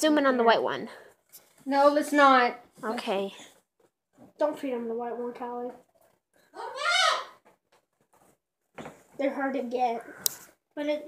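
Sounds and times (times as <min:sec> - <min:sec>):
high-pitched vocal cry: 0:06.5 - 0:07.4.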